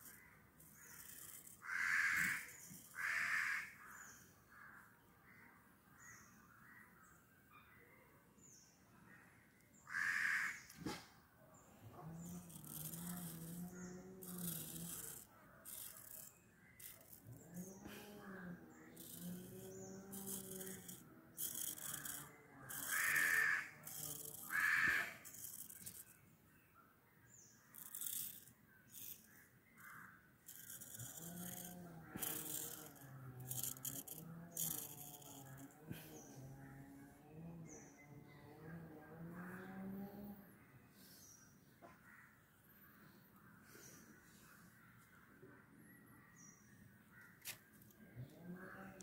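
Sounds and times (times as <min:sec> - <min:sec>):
razor scraping through hair: 0:00.0 - 0:03.7, 0:11.9 - 0:26.2, 0:27.7 - 0:36.7.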